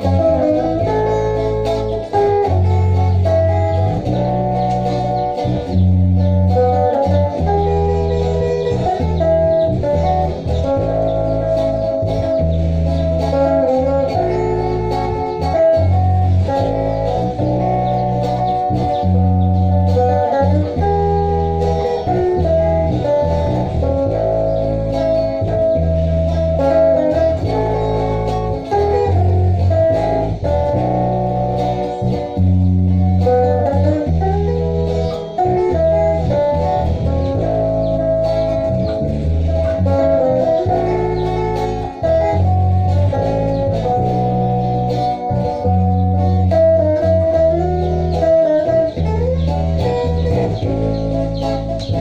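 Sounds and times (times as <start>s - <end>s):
bass guitar low notes: 0.0s - 52.0s
lead electric guitar melody: 0.0s - 52.0s
strummed rhythm guitar: 0.0s - 52.0s.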